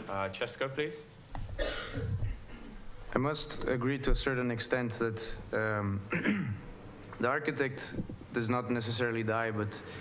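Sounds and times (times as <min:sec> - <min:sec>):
person coughing: 0:01.6 - 0:02.7, 0:06.1 - 0:06.7.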